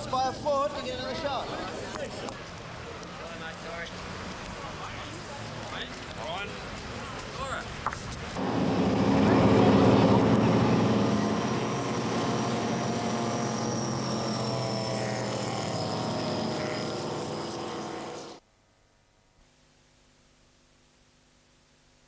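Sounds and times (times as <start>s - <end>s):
powerboat engine passing: 8.4s - 18.4s.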